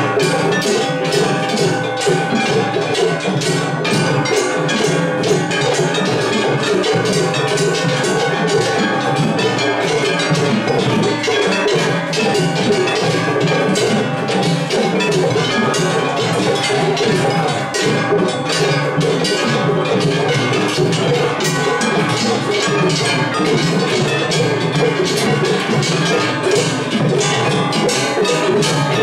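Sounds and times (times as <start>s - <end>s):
hand gongs clanging: 0.0s - 29.0s
taiko drums beating: 0.0s - 29.0s.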